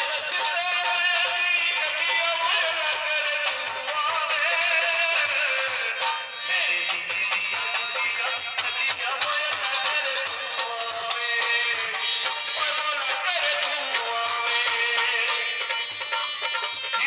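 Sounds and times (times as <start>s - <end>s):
man singing into a microphone: 0.0s - 17.0s.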